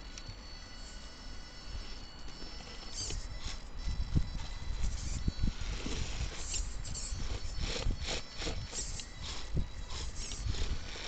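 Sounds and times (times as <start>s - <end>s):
faint electric motor whine: 0.0s - 11.0s
wind rumble on microphone: 3.2s - 11.0s.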